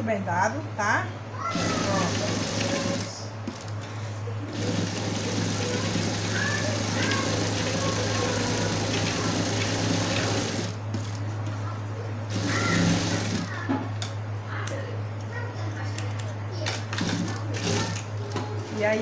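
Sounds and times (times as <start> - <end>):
sewing machine stitching: 1.5 - 3.7, 4.5 - 11.1, 12.3 - 13.6, 17.0 - 18.1.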